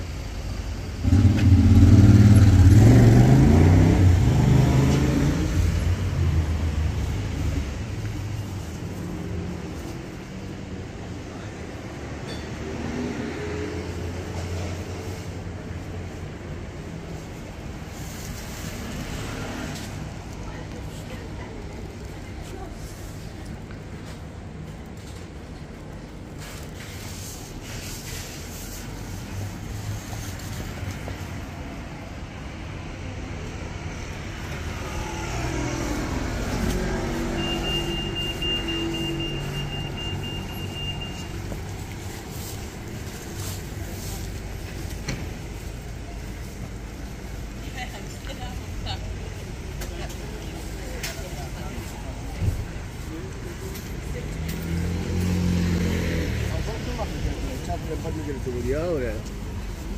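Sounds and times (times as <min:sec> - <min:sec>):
heavy engine passing: 0:00.0 - 0:11.2, 0:26.0 - 0:59.9
cars and vans passing: 0:00.0 - 0:59.9.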